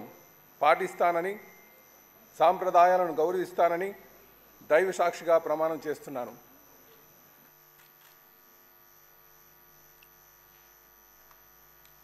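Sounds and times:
faint electrical mains hum: 0:00.0 - 0:12.0
faint ticks: 0:11.2 - 0:12.0.

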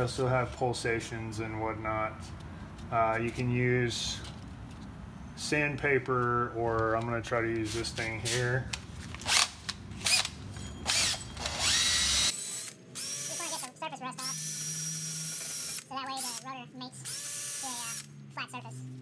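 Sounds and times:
drill motor whine: 0:10.8 - 0:13.6, 0:14.2 - 0:16.4, 0:17.0 - 0:18.1.

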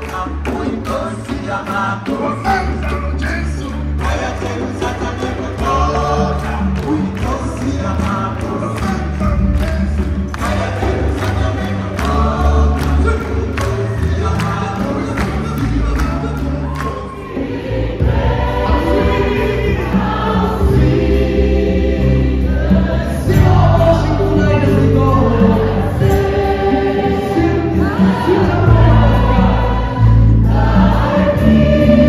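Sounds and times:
choir and congregation singing: 0:00.0 - 0:32.0
crowd clapping on the beat: 0:00.0 - 0:32.0.

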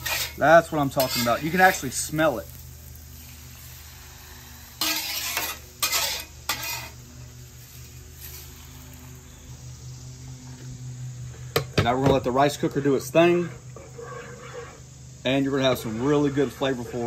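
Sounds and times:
metal spatula scraping griddle: 0:00.0 - 0:09.0, 0:12.3 - 0:17.0
steady low hum: 0:00.0 - 0:17.0.

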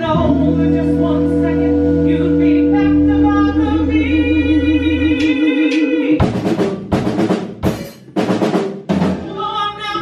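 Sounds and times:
held note with vibrato: 0:00.0 - 0:06.1
heavy drum kit hits: 0:05.2 - 0:09.4.

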